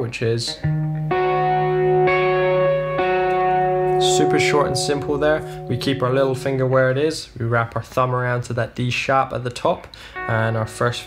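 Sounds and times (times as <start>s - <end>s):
electric guitar chord notes ringing: 0.6s - 7.1s, 10.1s - 11.0s.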